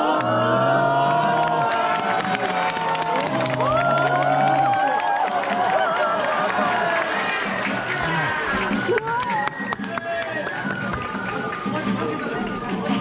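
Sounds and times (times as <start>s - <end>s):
crowd chatter and calls: 0.0s - 13.0s
flute playing long notes: 7.6s - 13.0s.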